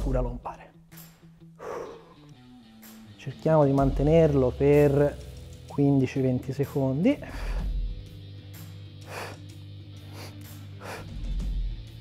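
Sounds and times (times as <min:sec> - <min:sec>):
quiet background music: 0:00.0 - 0:12.0
man breathing effortfully: 0:01.4 - 0:02.5, 0:07.2 - 0:11.9.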